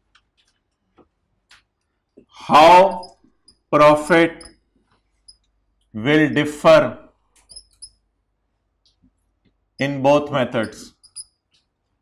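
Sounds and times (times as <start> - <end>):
marker pen ticking on whiteboard: 10.6 - 11.7.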